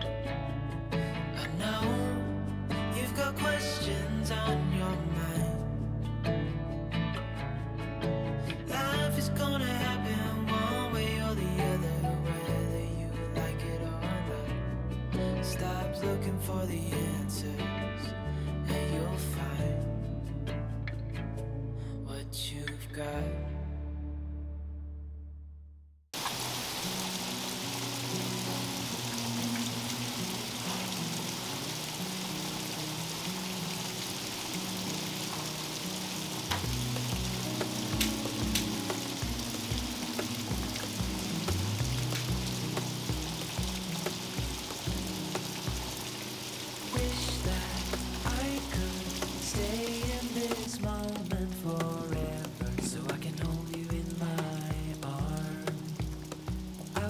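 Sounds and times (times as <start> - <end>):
steady rain hiss: 26.2 - 57.0
music melody: 26.8 - 57.0
soft pulsing music beat: 35.3 - 57.0.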